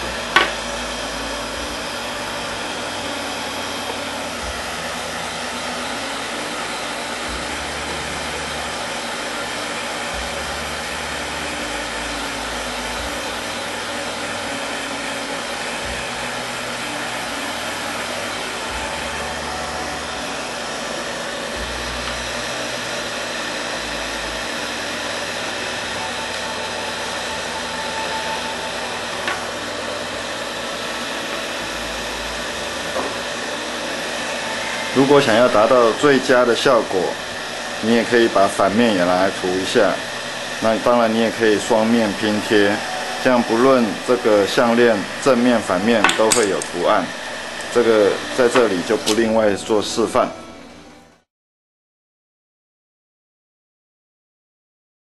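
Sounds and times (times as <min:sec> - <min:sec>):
hot-air dryer blowing: 0:00.0 - 0:51.3.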